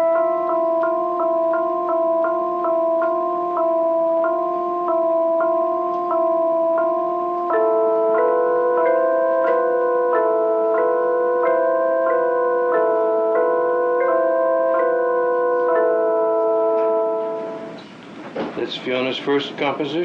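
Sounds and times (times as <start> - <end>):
electronic keyboard chords: 0.0 - 18.2
person speaking: 18.6 - 20.0.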